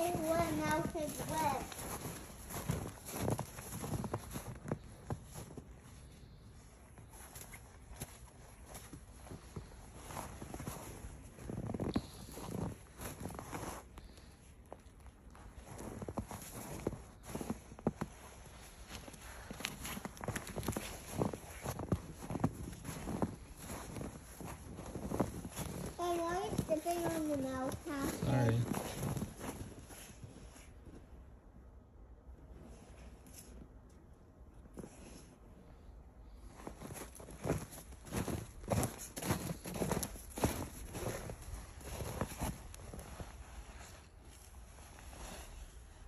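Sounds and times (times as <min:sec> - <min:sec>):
footsteps crunching in snow: 0:00.0 - 0:31.0, 0:34.7 - 0:46.0.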